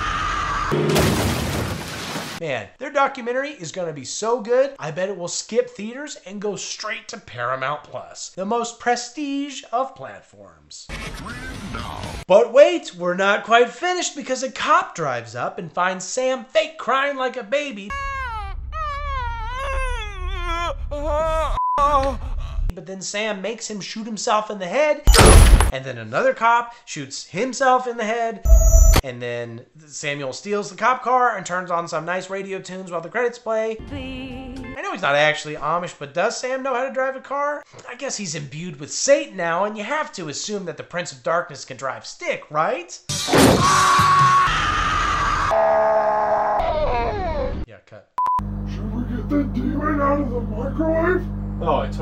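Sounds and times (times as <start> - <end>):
person fake-crying like a baby: 17.9 - 22.7, 46.3 - 47.6.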